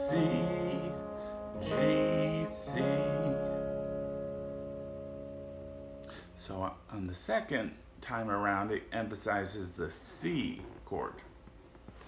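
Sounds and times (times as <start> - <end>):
electric guitar chord ringing: 0.0 - 6.8.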